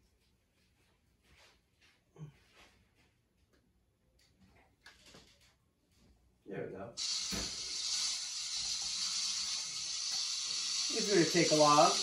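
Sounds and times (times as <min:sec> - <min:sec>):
steady hiss from television speakers: 0:06.5 - 0:12.0.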